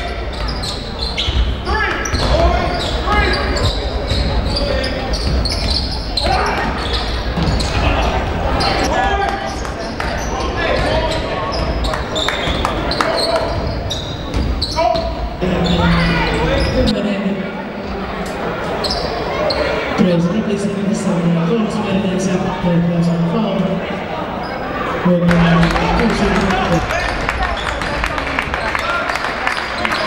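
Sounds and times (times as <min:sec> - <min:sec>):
voices of players and spectators: 0:00.0 - 0:30.0
basketball bouncing on court: 0:05.1 - 0:08.4, 0:13.5 - 0:14.8.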